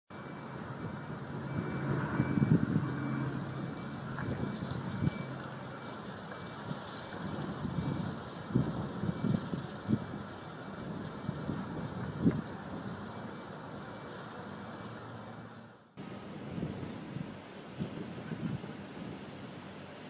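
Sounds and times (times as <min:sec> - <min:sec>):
diesel truck engine rumbling: 0:00.1 - 0:20.0.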